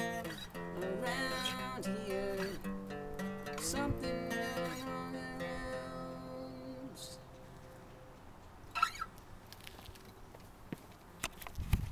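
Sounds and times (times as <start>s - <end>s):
acoustic guitar chord: 0.0s - 7.8s
short squeak: 8.7s - 9.1s.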